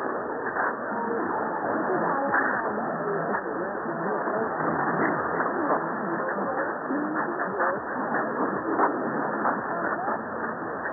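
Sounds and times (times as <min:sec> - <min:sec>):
faint radio speech: 0:00.0 - 0:10.9
radio hiss and static: 0:00.0 - 0:10.9.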